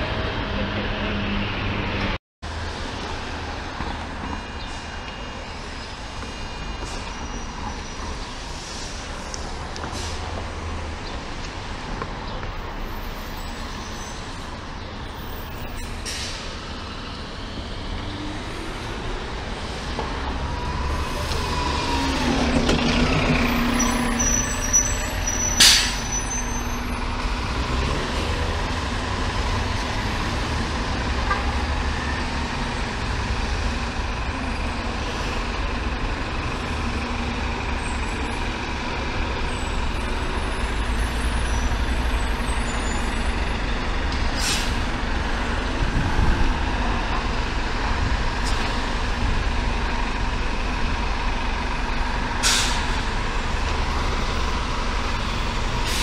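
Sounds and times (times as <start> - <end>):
bus engine rumbling: 0.0 - 56.0
street traffic: 0.0 - 56.0
air brake hisses: 44.4 - 44.8, 52.4 - 53.0.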